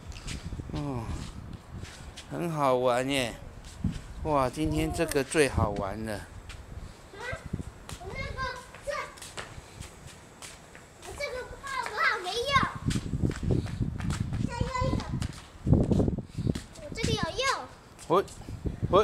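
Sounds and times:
child shouting and squealing: 7.1s - 9.4s, 11.0s - 12.9s, 14.4s - 15.2s, 16.8s - 17.7s.

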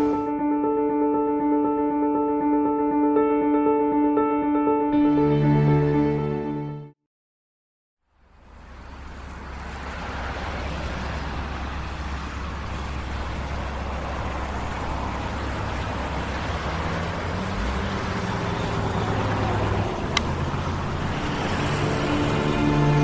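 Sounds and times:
street traffic rumble: 8.1s - 23.0s.

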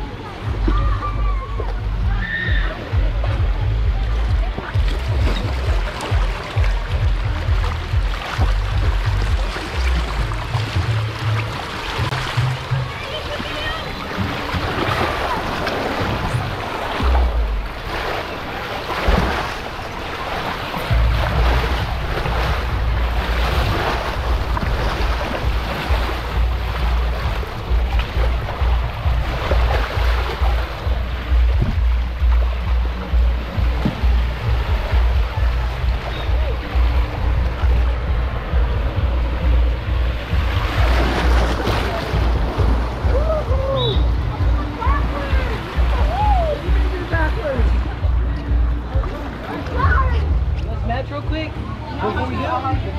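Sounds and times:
rushing water: 0.0s - 52.9s
wind buffeting microphone: 20.8s - 51.5s
rider sliding down water slide: 40.2s - 47.6s.

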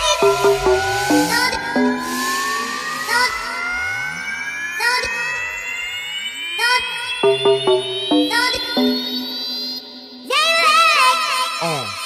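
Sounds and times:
deep sliding bass: 0.0s - 4.2s
chopped bassline: 0.0s - 4.6s, 7.2s - 9.4s
sharp electronic hits: 0.0s - 6.2s, 7.2s - 9.9s
rising synth riser: 0.0s - 9.8s.

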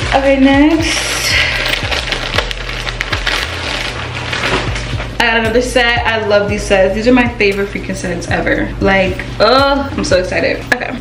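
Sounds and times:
plastic bag crinkling: 0.0s - 5.2s.

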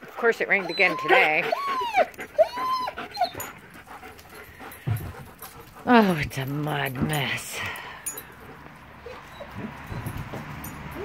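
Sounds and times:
dog whining: 0.4s - 5.8s, 8.1s - 11.0s.

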